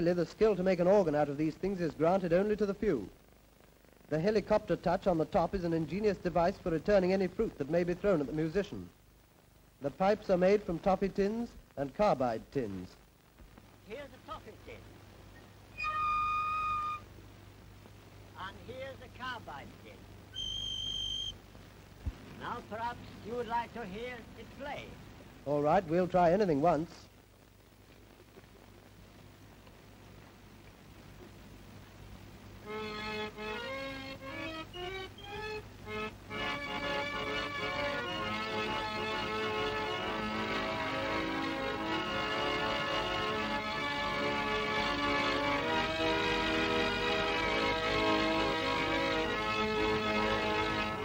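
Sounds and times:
organ pipe high steady note: 0:15.7 - 0:17.1, 0:32.6 - 0:51.0.

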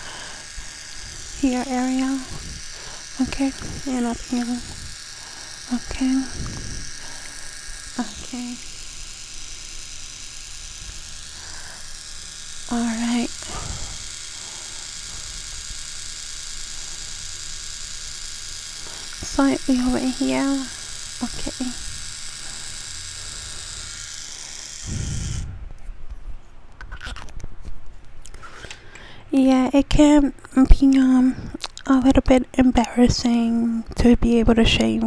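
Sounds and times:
electric trimmer buzzing: 0:00.0 - 0:25.8, 0:28.3 - 0:31.2.

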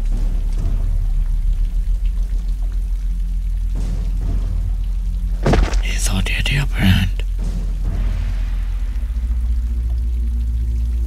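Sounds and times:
deep low drone: 0:00.0 - 0:05.4, 0:07.2 - 0:11.0
steady rain falling: 0:00.0 - 0:11.0.

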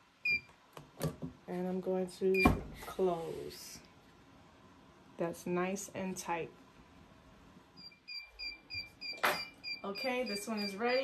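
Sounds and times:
electronic timer beeping: 0:07.8 - 0:11.0.

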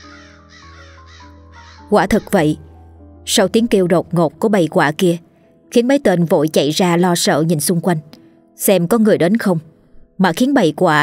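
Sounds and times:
crows cawing: 0:00.0 - 0:02.4
background music with held notes: 0:00.0 - 0:11.0.

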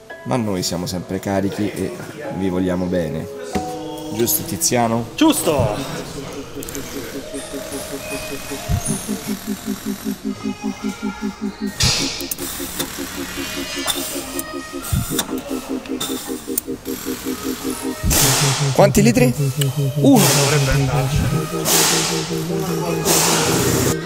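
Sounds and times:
pulsing beat music: 0:03.6 - 0:24.0.

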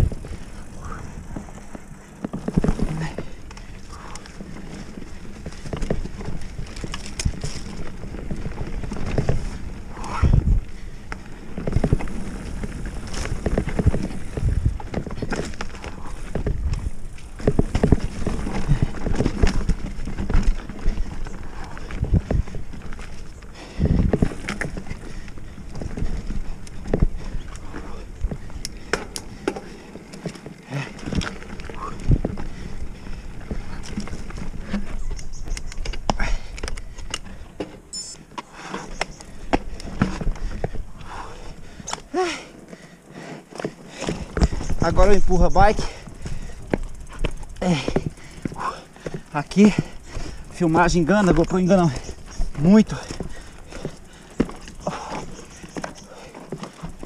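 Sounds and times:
bike knocking and clattering: 0:00.0 - 0:57.0
bike tyres rumbling on dirt: 0:00.0 - 0:57.0.

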